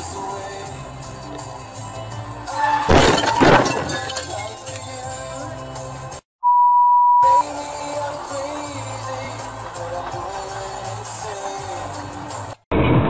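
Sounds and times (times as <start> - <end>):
background music: 0.0 - 6.2, 7.2 - 12.6
car crash: 2.7 - 4.6
censor bleep: 6.4 - 7.5.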